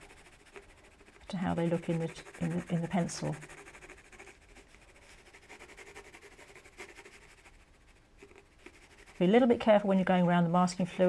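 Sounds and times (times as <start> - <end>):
pencil scratching on paper: 0.0 - 9.9.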